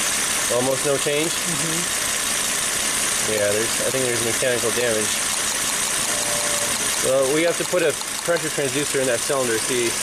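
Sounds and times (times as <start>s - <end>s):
car engine idling rough: 0.0s - 10.0s.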